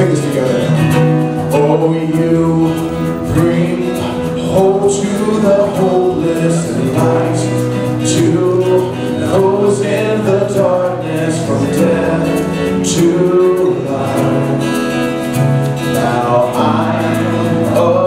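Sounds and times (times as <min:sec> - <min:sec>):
acoustic guitar: 0:00.0 - 0:18.0
keyboard: 0:00.0 - 0:18.0
man and woman singing: 0:01.5 - 0:15.1, 0:15.8 - 0:18.0.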